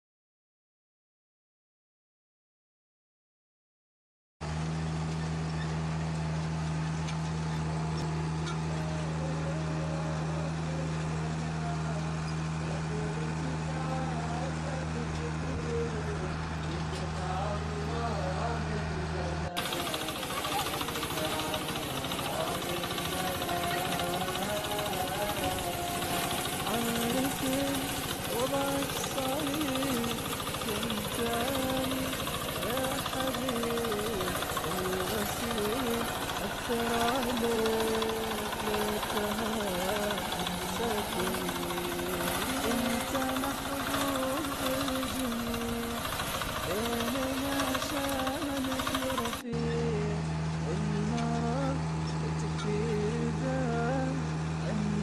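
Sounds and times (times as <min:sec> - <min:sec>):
person speaking: 0:12.8 - 0:46.1
harvesting machinery clattering: 0:19.6 - 0:49.7.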